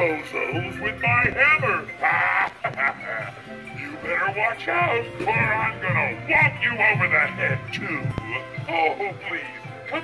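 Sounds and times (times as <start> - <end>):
animatronic clown laughing: 1.6 - 4.0.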